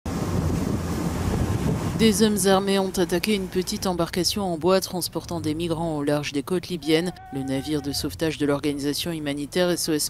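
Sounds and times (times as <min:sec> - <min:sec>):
water washing: 0:00.1 - 0:04.6
wind buffeting microphone: 0:00.1 - 0:05.8.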